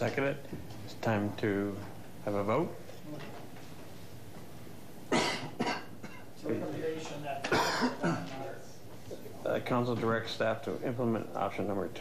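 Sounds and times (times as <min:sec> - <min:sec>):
man coughing: 0:05.1 - 0:06.3, 0:07.4 - 0:08.4.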